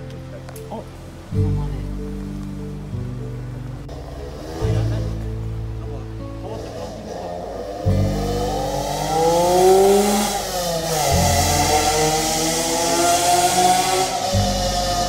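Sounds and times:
background music: 0.0 - 15.0
car engine revving by: 3.9 - 5.4, 6.4 - 15.0.

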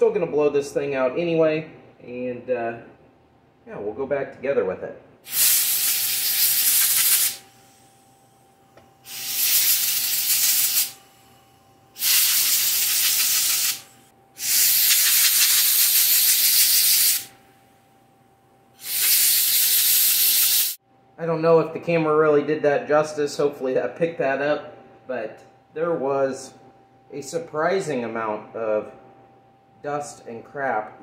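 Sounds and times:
compressed air blasting: 5.2 - 8.2, 9.0 - 17.4, 18.8 - 20.8.

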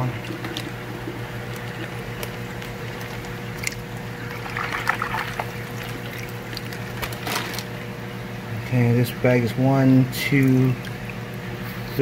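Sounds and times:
water pouring and splashing: 0.2 - 7.6.

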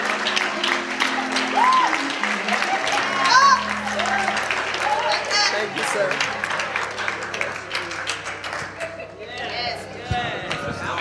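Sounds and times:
congregation clapping: 0.0 - 9.5
music playing: 0.0 - 10.0.

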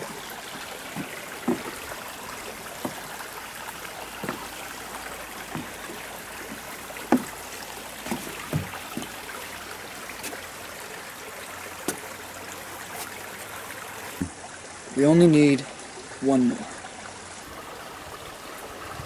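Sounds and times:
short knocks: 0.0 - 3.2, 4.2 - 9.2
creek flowing: 0.0 - 19.0.

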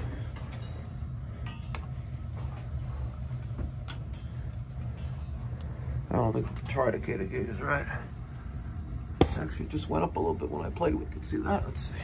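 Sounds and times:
light clicks on pipes: 0.0 - 5.8.

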